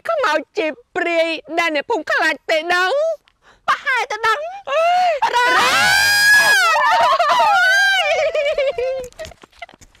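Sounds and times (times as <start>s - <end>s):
men shouting and wailing: 4.7s - 9.0s.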